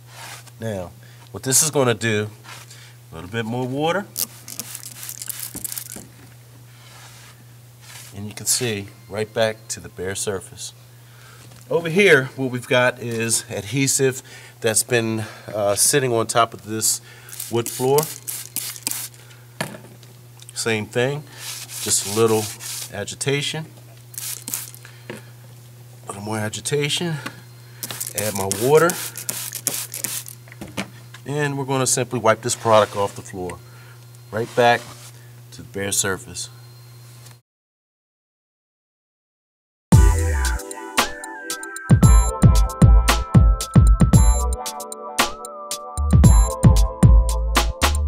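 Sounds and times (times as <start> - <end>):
cloth scrubbing wet tile floor: 17.4 - 19.2, 21.4 - 23.0, 24.2 - 24.8, 28.0 - 30.4.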